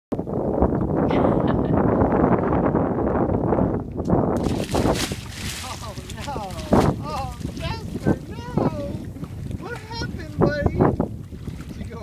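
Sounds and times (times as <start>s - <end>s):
wind rumble on microphone: 0.1s - 12.0s
person laughing: 1.0s - 1.9s, 5.6s - 6.8s.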